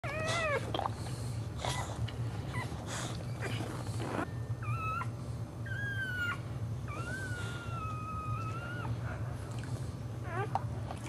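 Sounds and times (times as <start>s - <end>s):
dog whining: 0.0s - 0.9s, 1.6s - 9.3s, 10.2s - 10.8s.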